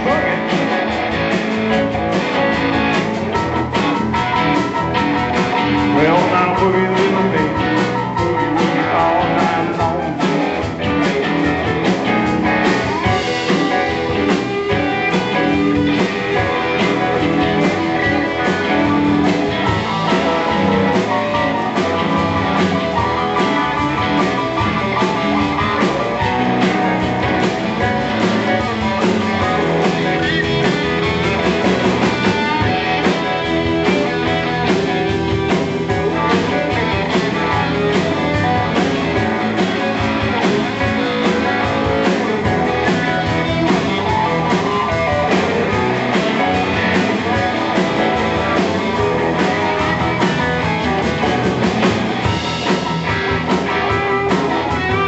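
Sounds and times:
electric guitar: 0.0 - 55.0
live blues band: 0.0 - 55.0.

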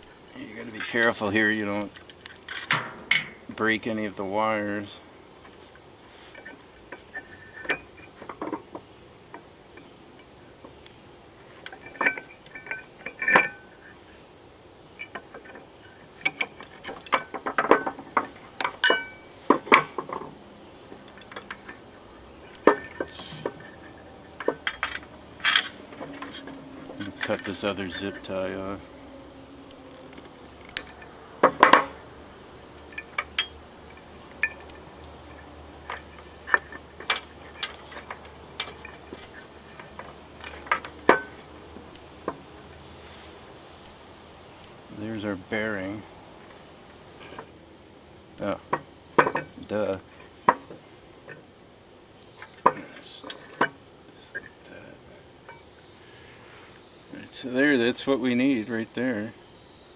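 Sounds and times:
sharp ringing metallic clink: 18.8 - 19.4
small clicks and light knocks: 19.5 - 21.8
hand tool clicking and knocking: 22.5 - 27.6.

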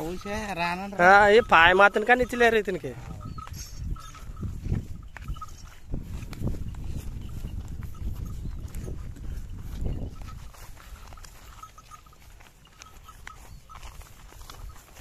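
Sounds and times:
footsteps in grass: 0.0 - 15.0.

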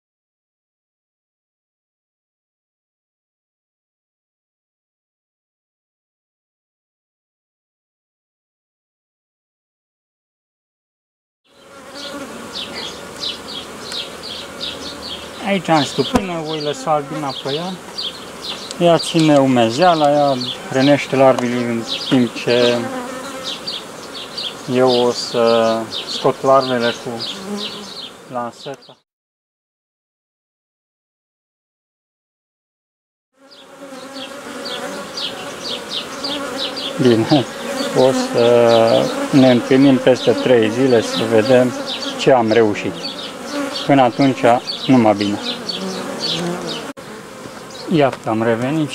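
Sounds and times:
bees buzzing: 11.5 - 29.0, 33.4 - 48.9
honeybees humming: 11.5 - 29.0, 33.4 - 48.9.

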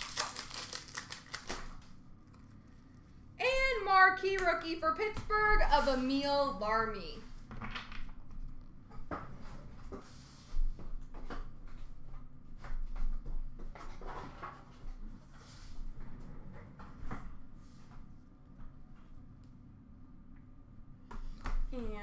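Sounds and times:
cards and wrappers rustling: 0.0 - 2.9.

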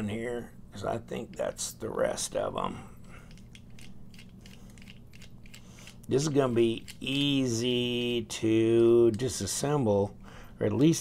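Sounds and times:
ratcheting screwdriver clicking: 3.3 - 6.1.

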